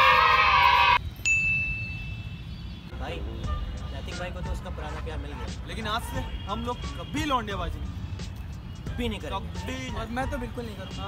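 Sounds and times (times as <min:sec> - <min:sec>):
high bell-like ding: 0:01.2 - 0:02.3.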